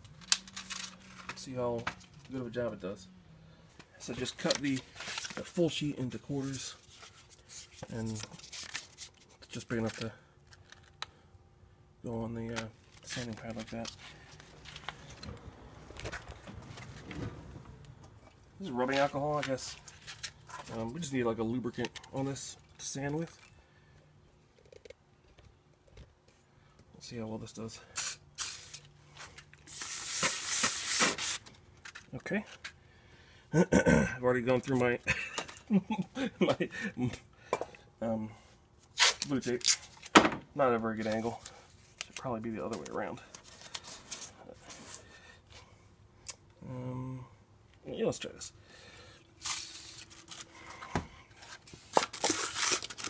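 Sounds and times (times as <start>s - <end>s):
liquid spraying: 28.0s - 28.8s, 49.4s - 50.0s
sandpaper scraping plastic: 29.7s - 31.5s.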